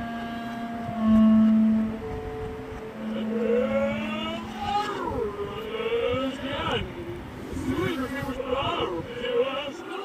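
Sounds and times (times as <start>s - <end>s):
clarinet played backwards: 0.0s - 9.0s
backwards voice with sliding pitch: 3.1s - 9.3s.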